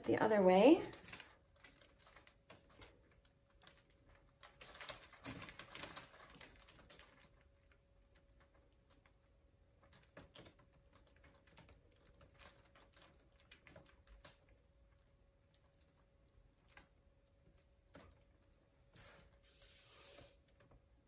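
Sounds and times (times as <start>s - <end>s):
brief hiss: 19.0s - 20.4s.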